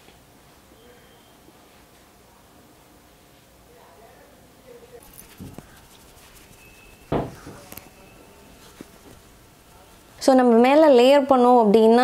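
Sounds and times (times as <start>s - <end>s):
makeup brush rubbing on skin: 5.0s - 10.2s
knock: 7.1s - 7.6s.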